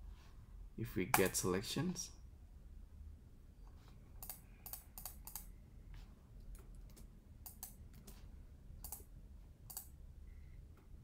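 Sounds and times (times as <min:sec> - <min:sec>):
low background hum: 0:00.0 - 0:11.0
keyboard and mouse clicking: 0:04.2 - 0:05.5, 0:06.5 - 0:08.2, 0:08.8 - 0:09.1, 0:09.7 - 0:10.0.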